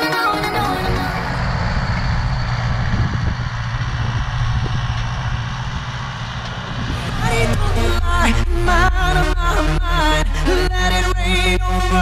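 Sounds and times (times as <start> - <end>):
tractor diesel engine under load: 0.0 - 12.0.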